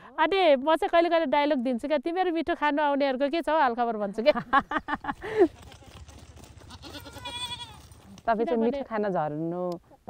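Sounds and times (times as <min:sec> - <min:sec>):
goat bleating: 0:05.5 - 0:08.2.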